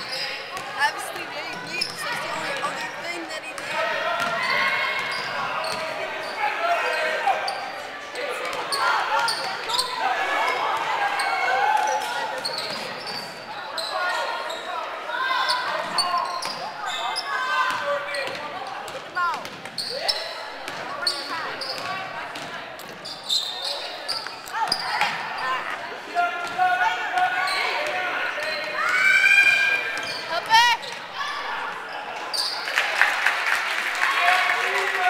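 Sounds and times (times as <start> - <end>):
echoing crowd voices: 0.0 - 35.0.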